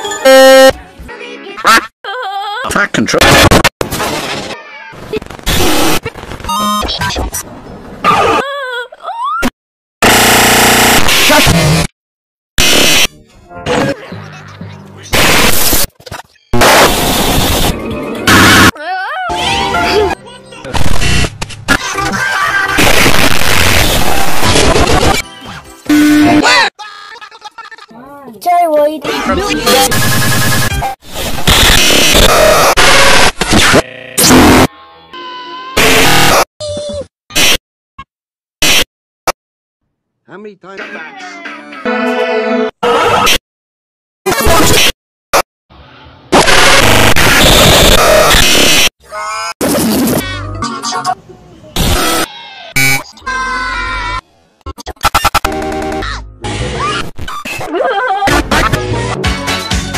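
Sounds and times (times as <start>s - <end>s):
distorted noise blast: 3.1s - 4.4s, 10.0s - 11.9s, 12.6s - 13.1s, 15.1s - 15.9s, 16.6s - 18.7s, 20.7s - 21.8s, 22.7s - 25.2s, 29.8s - 34.7s, 46.3s - 48.9s
buzzy electronic tone: 31.8s - 34.7s.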